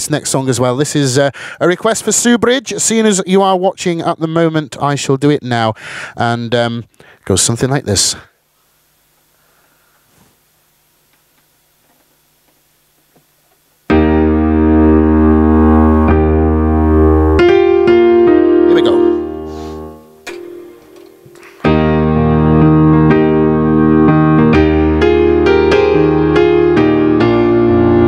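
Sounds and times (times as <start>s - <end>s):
electric piano chords: 13.9s - 28.0s.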